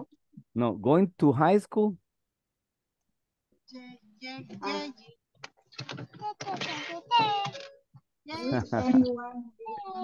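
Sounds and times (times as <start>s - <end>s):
people speaking over video call: 0.0s - 10.0s.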